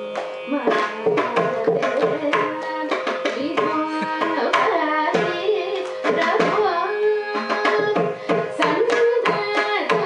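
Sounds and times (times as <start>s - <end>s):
mridangam strokes: 0.0s - 10.0s
tanpura drone: 0.0s - 10.0s
woman singing with pitch glides: 0.4s - 10.0s.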